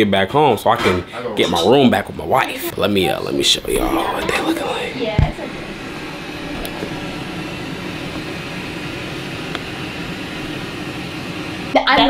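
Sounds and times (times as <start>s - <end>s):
ventilation air rushing: 0.6s - 12.0s.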